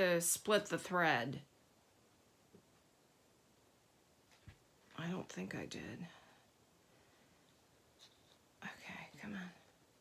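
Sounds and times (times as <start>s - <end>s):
woman whispering: 8.6s - 9.8s.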